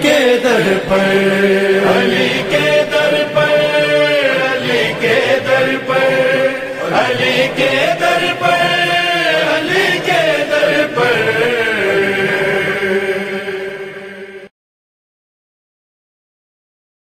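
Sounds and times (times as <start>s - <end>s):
person chanting: 0.0s - 14.5s.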